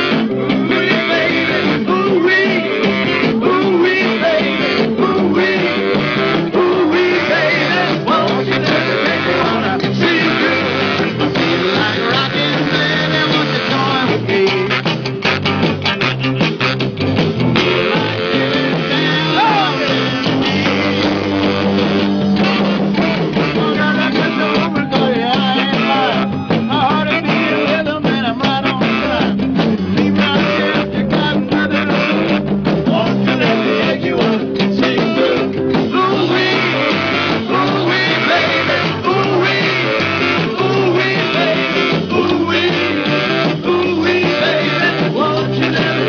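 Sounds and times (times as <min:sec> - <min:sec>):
man singing: 0:00.0 - 0:16.8, 0:17.5 - 0:21.6, 0:22.4 - 0:46.0
electric guitar: 0:00.0 - 0:46.0
live rock band playing: 0:00.0 - 0:46.0
saxophone: 0:00.0 - 0:46.0.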